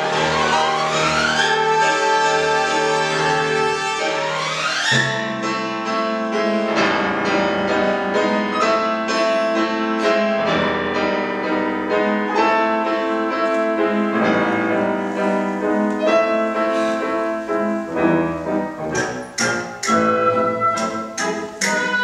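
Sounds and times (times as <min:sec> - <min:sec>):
orchestra sustained sound: 0:00.0 - 0:22.0
piano runs and chords: 0:00.0 - 0:22.0.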